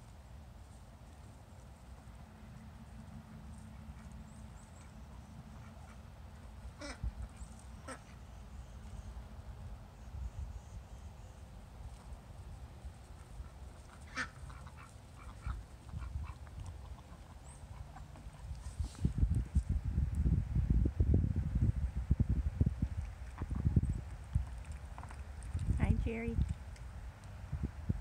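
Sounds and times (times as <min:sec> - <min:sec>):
ducks quacking: 0:06.8 - 0:08.2, 0:13.2 - 0:18.5
low rumble on microphone: 0:15.2 - 0:28.0.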